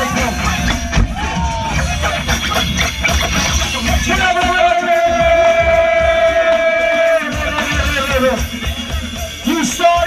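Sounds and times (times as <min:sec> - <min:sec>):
dj music with heavy bass beat: 0:00.0 - 0:10.0.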